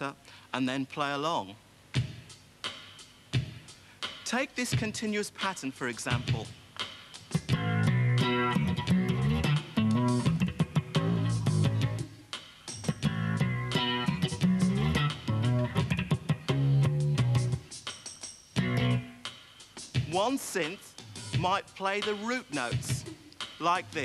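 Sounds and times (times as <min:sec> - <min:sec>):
electric bass funk pattern: 0:07.4 - 0:12.1, 0:12.9 - 0:17.7, 0:18.6 - 0:19.2.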